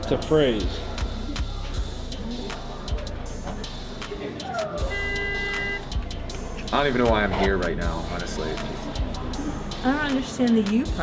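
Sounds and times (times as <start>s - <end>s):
steady horn-like tone: 4.9s - 6.0s.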